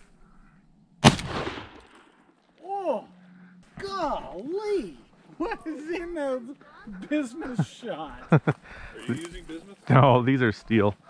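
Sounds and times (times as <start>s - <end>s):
shotgun blast with echo: 1.0s - 2.0s.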